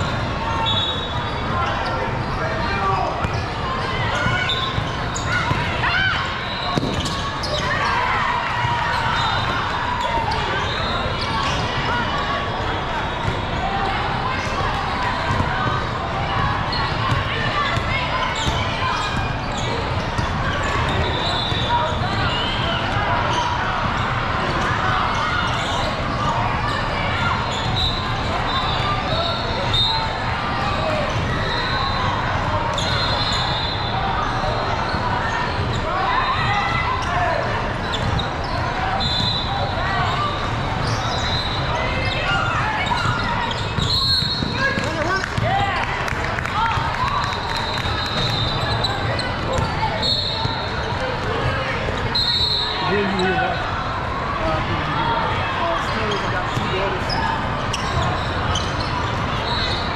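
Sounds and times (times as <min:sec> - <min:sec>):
people talking and calling out: 0:00.0 - 0:59.9
sneakers squeaking: 0:00.0 - 0:59.9.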